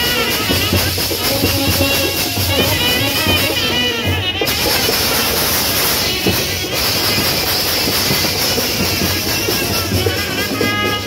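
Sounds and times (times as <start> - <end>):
brass band horns and drums: 0.0 - 11.0.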